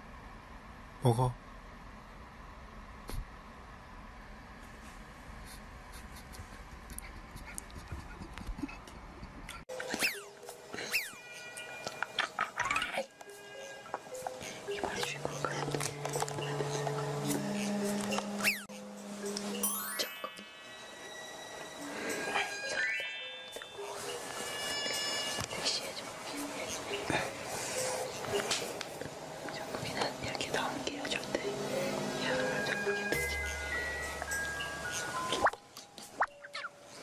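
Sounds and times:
soft background music: 9.7 - 37.0
person whispering: 14.4 - 17.1, 22.3 - 22.8, 25.5 - 28.8, 29.4 - 33.4.

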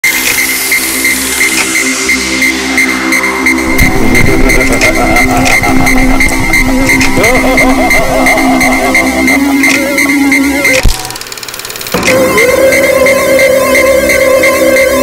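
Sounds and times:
held synth tones: 0.0 - 15.0
falling synth sweep: 0.5 - 10.8, 12.1 - 15.0
deep wobbling bass: 2.3 - 11.2.

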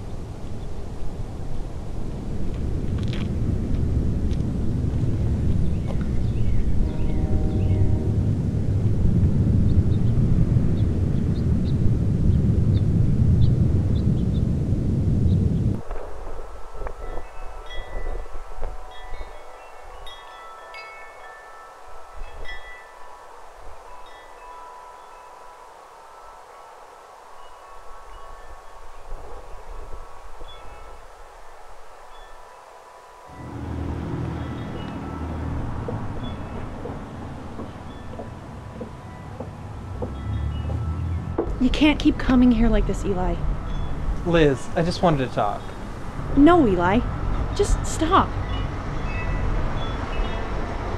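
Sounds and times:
wind rumble: 0.0 - 50.9
chimes ringing: 16.6 - 41.4.

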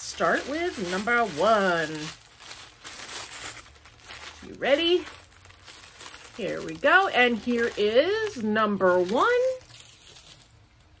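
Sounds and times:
tissue paper crinkling: 0.0 - 11.0.

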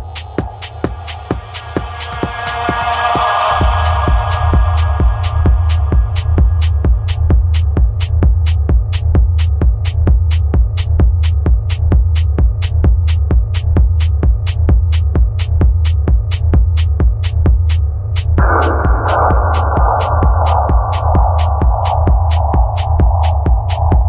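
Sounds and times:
techno kick and bass: 0.0 - 24.0
hissing synth noise: 18.4 - 24.0.

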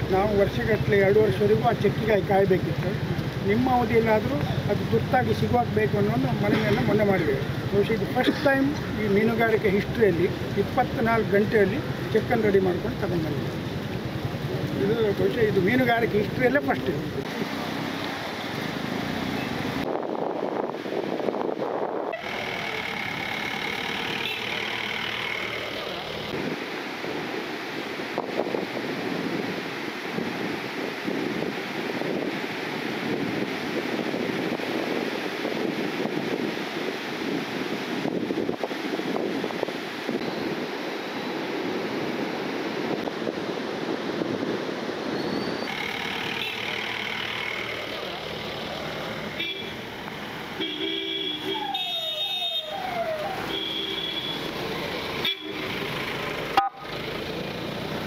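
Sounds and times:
rushing outdoor noise: 0.0 - 58.0
vehicle horns honking: 22.1 - 25.7, 45.6 - 47.7, 49.3 - 49.9, 50.6 - 52.8, 53.4 - 54.5, 55.2 - 55.7, 56.6 - 56.9.

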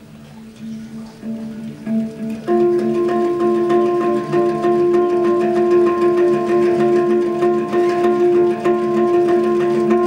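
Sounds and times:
handpans playing: 0.0 - 10.0.

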